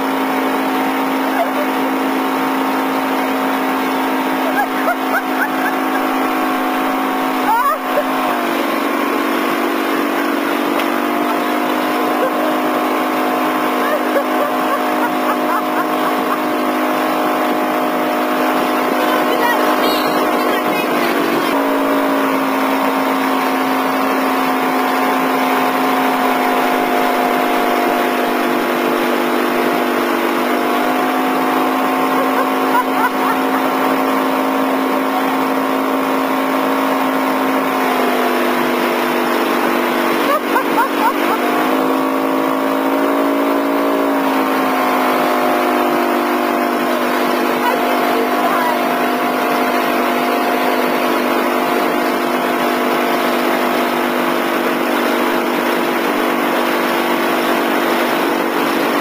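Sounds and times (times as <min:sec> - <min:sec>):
motorboat engine running: 0:00.0 - 0:59.0
wake water rushing: 0:00.0 - 0:59.0
wind: 0:00.0 - 0:59.0.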